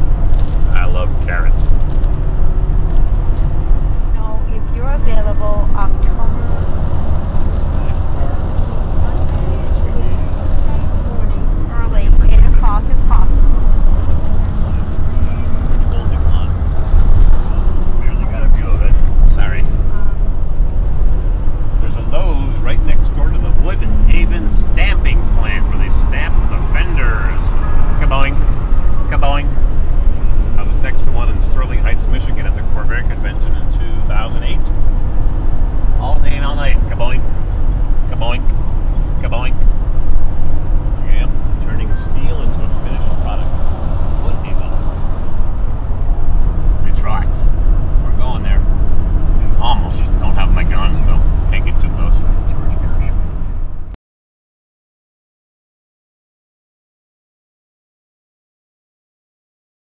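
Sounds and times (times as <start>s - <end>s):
vehicle road and engine rumble: 0.0s - 54.0s
indistinct voices: 0.6s - 1.8s, 3.7s - 20.4s, 21.6s - 34.8s, 35.8s - 37.3s, 38.0s - 39.8s, 40.8s - 53.9s.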